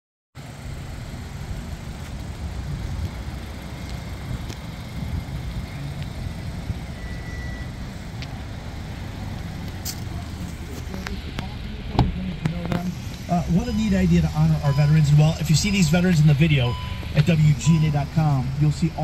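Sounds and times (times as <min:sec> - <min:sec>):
car engine idling: 0:00.4 - 0:19.0.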